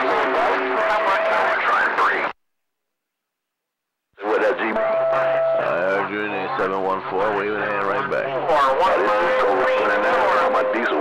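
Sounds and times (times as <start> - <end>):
garbled radio voices: 0.0 - 2.4, 4.2 - 11.0
radio static hiss: 0.0 - 2.4, 4.2 - 5.8, 6.6 - 11.0
whistling radio tones: 4.2 - 6.6, 8.9 - 11.0.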